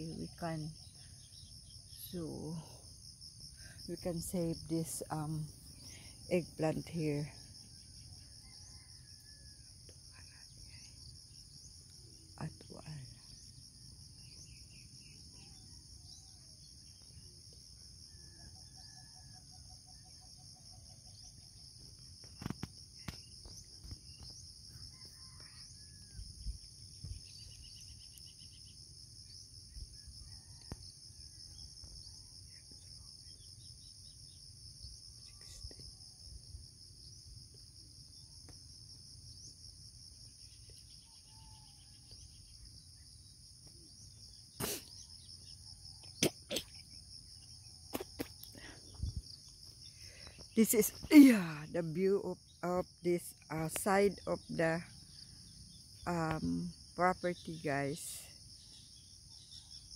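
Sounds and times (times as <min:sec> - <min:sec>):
insects chirping: 0:00.0 - 0:59.9.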